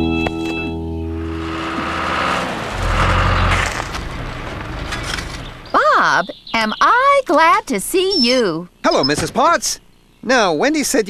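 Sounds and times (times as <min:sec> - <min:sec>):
organ-like chord music: 0:00.0 - 0:02.4
noisy engine rumble: 0:00.0 - 0:11.0.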